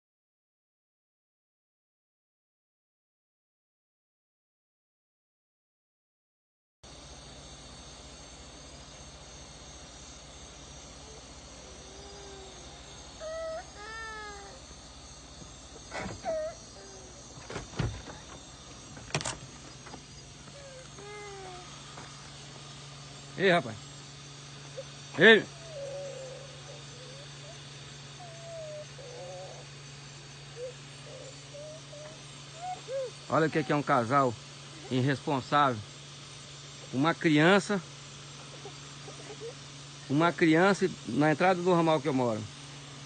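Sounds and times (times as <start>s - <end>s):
night insects droning: 6.9s - 43.0s
steady low hum: 6.9s - 43.0s
high-pitched whimpering cries: 11.0s - 14.8s, 15.8s - 18.4s, 20.4s - 21.8s, 24.7s - 34.1s, 38.4s - 39.7s.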